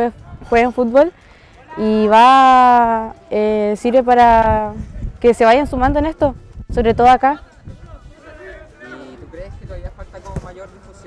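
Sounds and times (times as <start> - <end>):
voices talking: 0.0 - 11.0
dull thuds of football kicks: 10.2 - 10.6.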